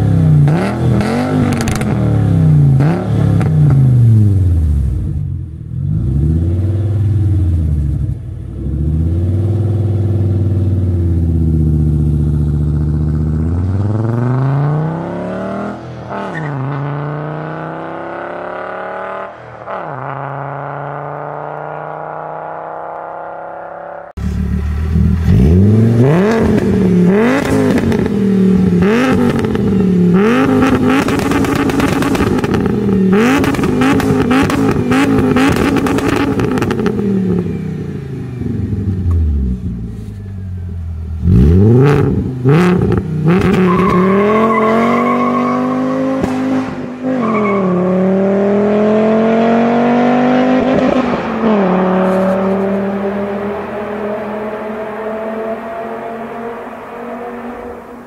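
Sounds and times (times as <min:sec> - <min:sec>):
car driving off: 0:00.0 - 0:58.0
car engine revving: 0:00.0 - 0:58.0
exhaust crackling: 0:50.9 - 0:58.0.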